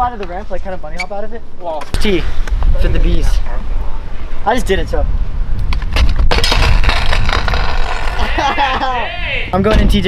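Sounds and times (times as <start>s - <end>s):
scooter clattering and scraping: 5.8s - 8.8s.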